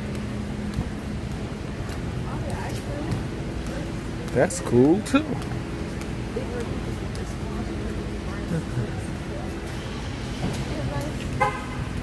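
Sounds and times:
car horn toot: 0:11.4 - 0:11.9.

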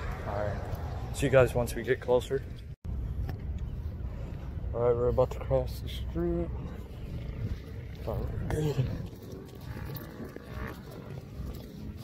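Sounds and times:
low rumbling street noise: 0:00.0 - 0:12.0.

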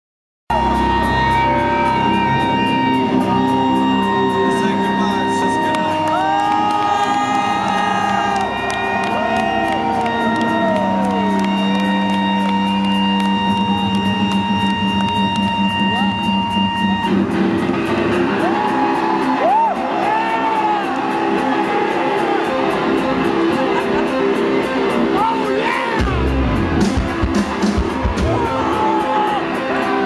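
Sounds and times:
crowd cheering and whooping: 0:00.5 - 0:02.0, 0:05.9 - 0:17.2, 0:17.8 - 0:24.6, 0:25.2 - 0:30.0
electric guitars droning: 0:00.5 - 0:30.0.

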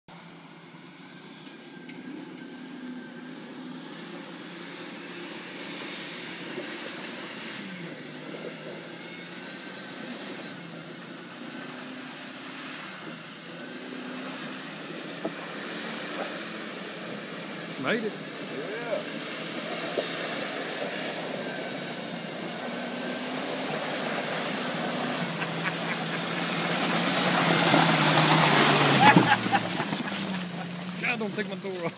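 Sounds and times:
engine revving under load: 0:00.9 - 0:31.9.

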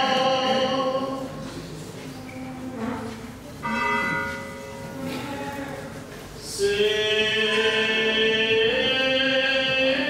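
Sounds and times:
chant: 0:00.0 - 0:01.6, 0:02.4 - 0:10.0
church bell ringing: 0:03.6 - 0:05.6.

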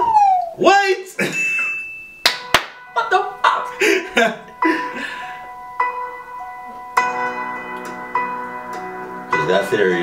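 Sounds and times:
bell-like music notes: 0:01.2 - 0:10.0.

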